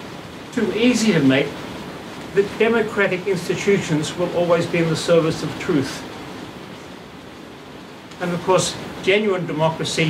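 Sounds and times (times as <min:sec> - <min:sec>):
steady room hiss: 0:00.0 - 0:10.0.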